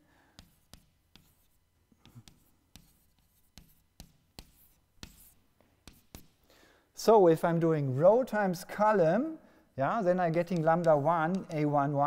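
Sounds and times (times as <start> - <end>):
chalk tapping on blackboard: 0.3 - 6.4, 10.3 - 11.8
chalk scratching: 0.4 - 6.4, 10.2 - 11.9.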